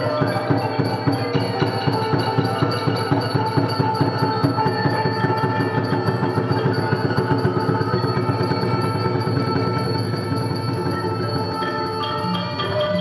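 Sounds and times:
drum and percussion beat: 0.0s - 13.0s
xylophone-like melody: 11.1s - 13.0s.

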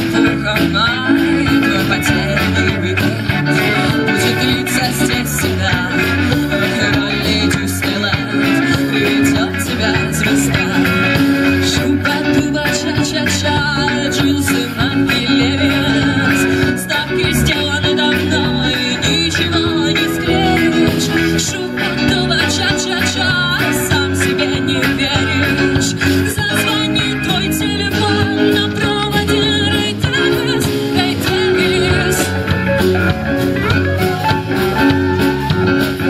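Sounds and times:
bass guitar: 0.0s - 36.0s
drum kit: 0.0s - 36.0s
electric guitar: 0.0s - 36.0s
keyboard: 0.0s - 36.0s
woman singing: 0.0s - 36.0s.

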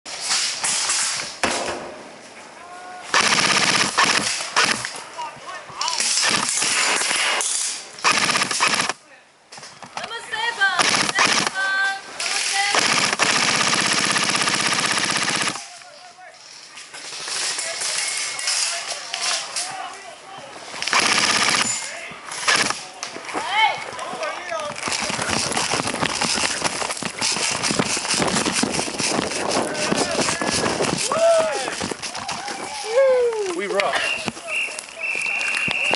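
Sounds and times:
airsoft rifle full-auto bursts: 3.1s - 4.9s, 6.2s - 7.3s, 8.0s - 9.0s, 10.8s - 11.7s, 12.5s - 15.7s, 20.8s - 22.8s
voices calling out: 29.1s - 35.9s.

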